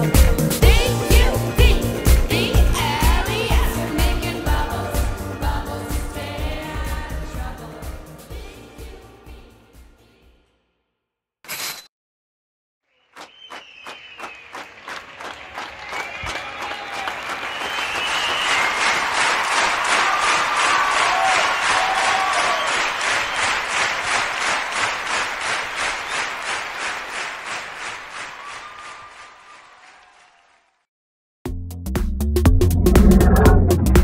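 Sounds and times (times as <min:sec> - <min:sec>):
audience applause: 0:13.0 - 0:30.8
scattered cheers: 0:13.2 - 0:23.7, 0:28.2 - 0:30.8.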